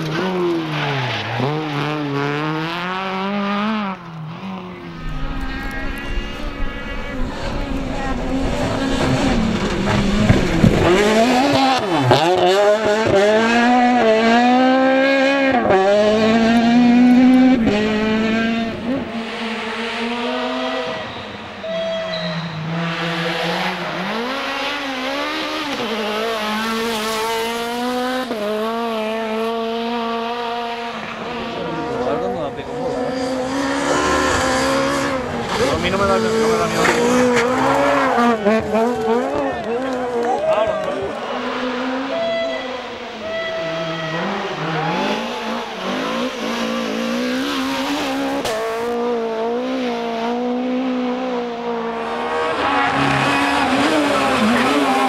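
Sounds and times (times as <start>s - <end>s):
rally car engines at high revs: 0.0s - 55.0s.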